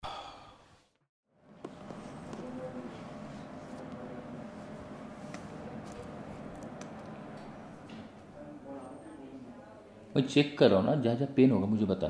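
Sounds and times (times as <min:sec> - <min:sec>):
person sighing: 0:00.0 - 0:00.7.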